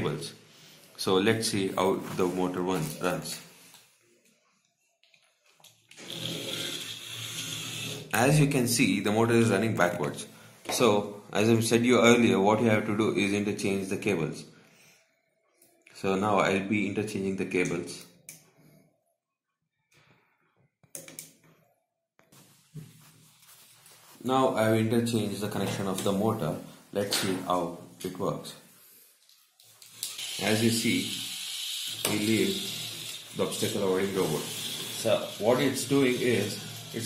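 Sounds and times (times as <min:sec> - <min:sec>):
small motors whining: 0:06.0 - 0:08.2, 0:30.0 - 0:37.0.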